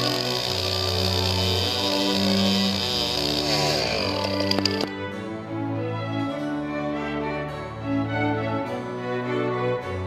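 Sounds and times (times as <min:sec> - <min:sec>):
chainsaw cutting tree: 0:00.0 - 0:04.9
background music with held notes: 0:00.0 - 0:10.0.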